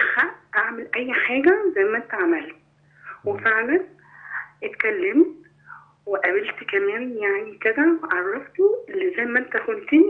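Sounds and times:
woman speaking over telephone: 0.0s - 5.4s, 6.1s - 10.0s
low hum: 1.4s - 9.8s.

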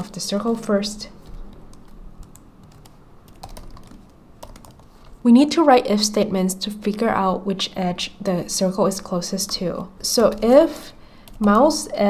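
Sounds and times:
computer keyboard typing: 1.2s - 5.0s, 8.9s - 12.0s.

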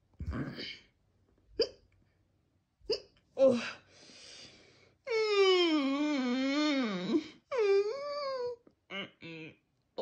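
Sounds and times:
person hiccuping: 1.6s - 1.8s, 2.9s - 3.2s.

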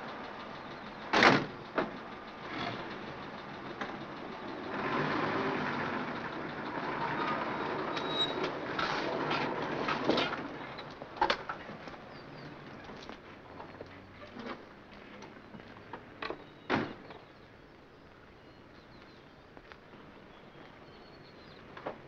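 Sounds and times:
vehicle engines and road noise: 0.0s - 22.0s.

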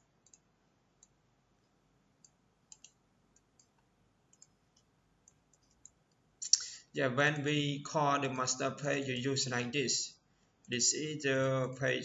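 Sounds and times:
mouse and keyboard clicks: 2.2s - 6.2s.

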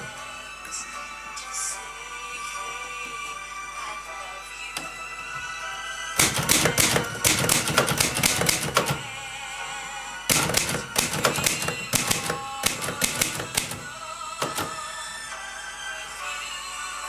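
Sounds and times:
faint background music: 0.0s - 17.0s
typewriter keystrikes: 6.2s - 9.1s, 10.3s - 14.8s.

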